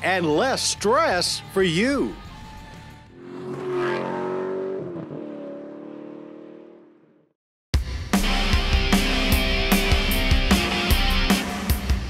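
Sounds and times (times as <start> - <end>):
vehicle engine passing by: 3.1 - 7.1.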